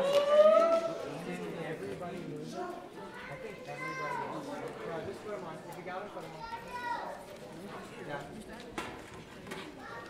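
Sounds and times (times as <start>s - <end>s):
chatter of many voices: 0.0s - 10.0s
children's voices: 2.6s - 4.7s, 6.2s - 7.4s, 9.5s - 10.0s.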